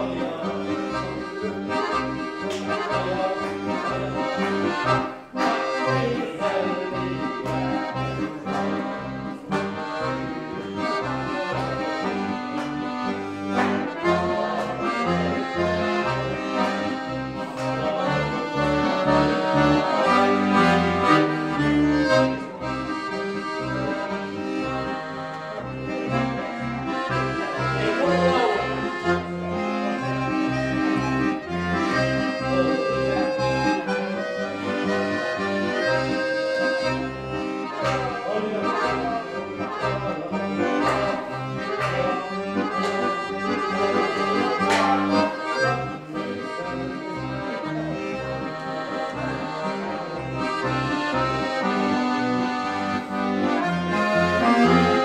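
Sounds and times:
button accordion melody: 0.0 - 55.0.

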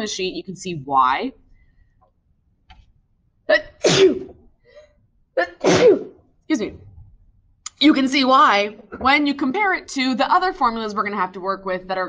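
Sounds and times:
woman sneezing: 3.5 - 4.3, 5.4 - 6.2.

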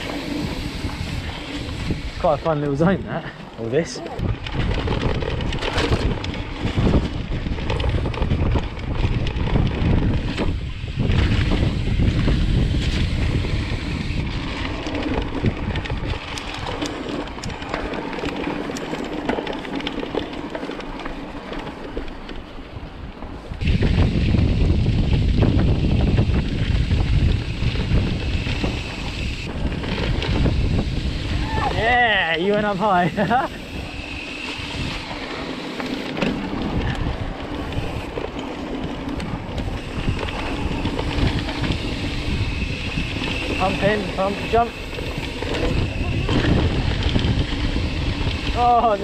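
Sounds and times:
bike rattles: 0.0 - 49.0
bike tyre noise: 0.0 - 49.0
wind buffeting microphone: 0.0 - 49.0.

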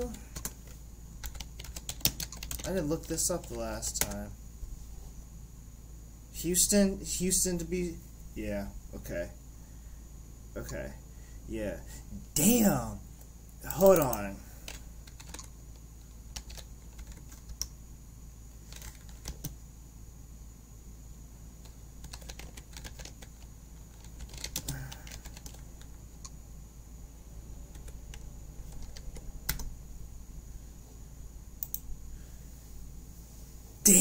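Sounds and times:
faint steady low hum: 0.0 - 34.0
computer keyboard key clicks: 1.2 - 2.7.

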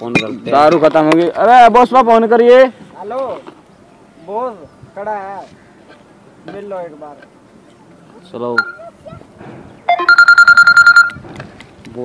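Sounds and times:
mobile phone ringing: 8.6 - 8.8, 9.9 - 11.2.

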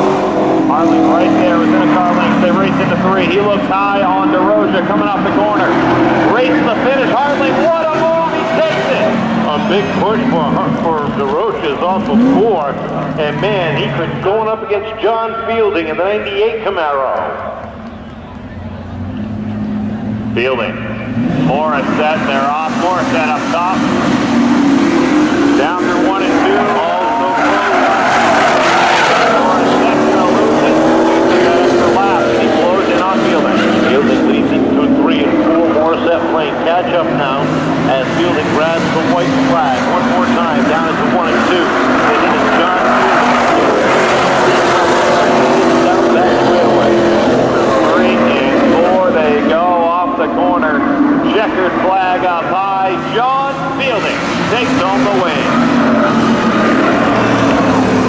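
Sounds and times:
racing car engines: 0.0 - 58.0
tires squealing: 0.0 - 58.0.

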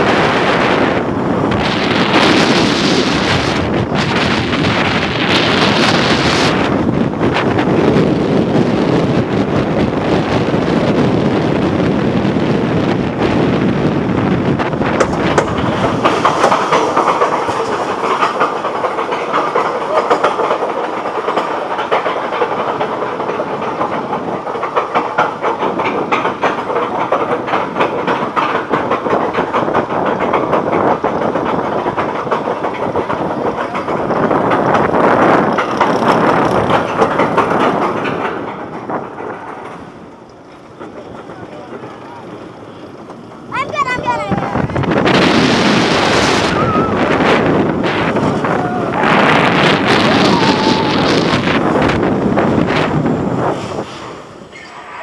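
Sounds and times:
roller coaster rattling on track: 0.0 - 55.0.

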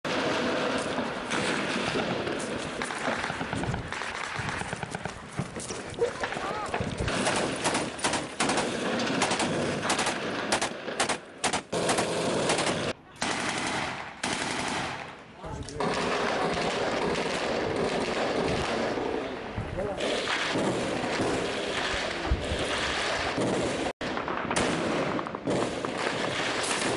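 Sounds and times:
gunfire in rapid bursts: 0.0 - 15.2, 15.8 - 26.9.

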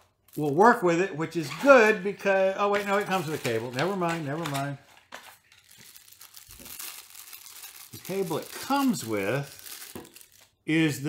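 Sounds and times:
plastic bag crinkling: 2.8 - 10.6.

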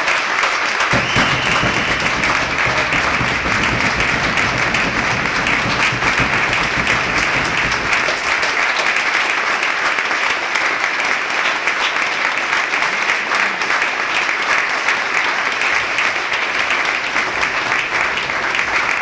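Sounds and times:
audience applauding: 0.0 - 19.0.

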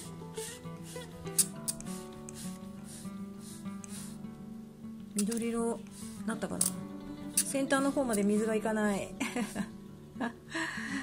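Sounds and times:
spray bottle squirts: 0.0 - 4.3, 5.2 - 8.5
soft acoustic guitar music: 0.0 - 11.0
spray trigger click: 1.3 - 2.7, 3.8 - 4.1, 5.2 - 6.0.

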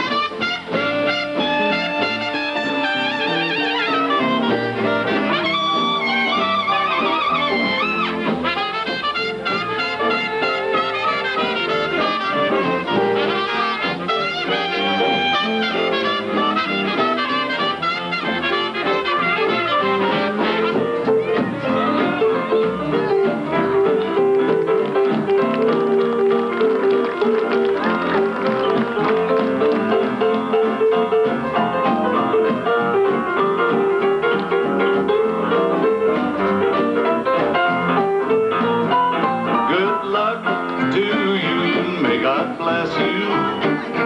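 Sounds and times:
trumpets and saxophone: 0.0 - 24.0
swing band playing live: 0.0 - 44.0.

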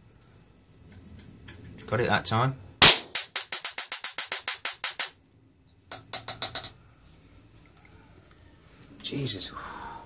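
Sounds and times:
electrical arcing snaps: 2.8 - 5.2.

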